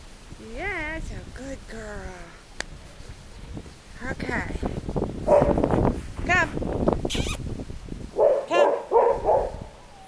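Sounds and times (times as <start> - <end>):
puppy barking with high yaps: 8.2 - 9.8.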